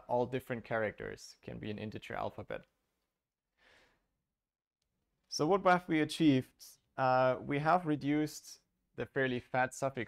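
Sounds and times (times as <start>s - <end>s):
faint breath: 3.5s - 4.2s.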